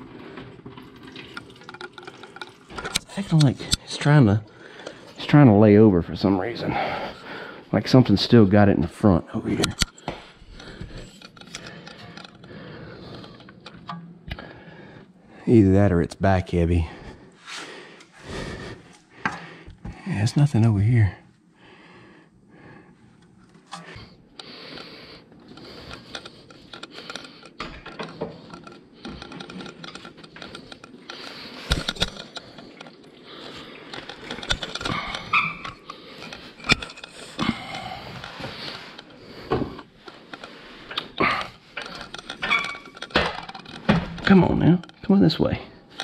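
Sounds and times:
rustling of hands and tools: 0:00.0 - 0:21.5, 0:22.2 - 0:46.0
metallic clinks and knocks: 0:41.8 - 0:45.0.

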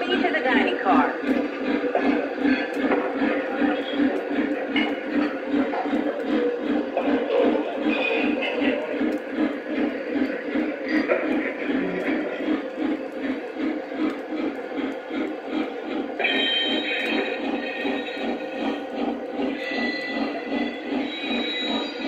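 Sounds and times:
model train wheels on track: 0:00.0 - 0:22.0
steam locomotive chuffing: 0:00.0 - 0:22.0.

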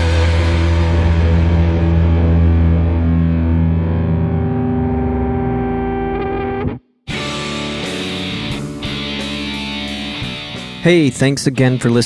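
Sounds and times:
distorted electric guitar chord: 0:00.0 - 0:10.9.

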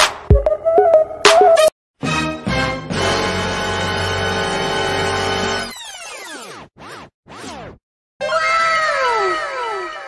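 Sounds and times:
meow-like pitched cry with echoes: 0:08.2 - 0:10.0.

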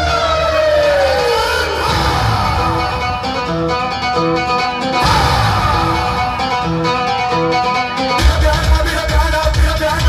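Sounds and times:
siren-like wail: 0:05.0 - 0:07.0
rising tone: 0:05.0 - 0:07.2.

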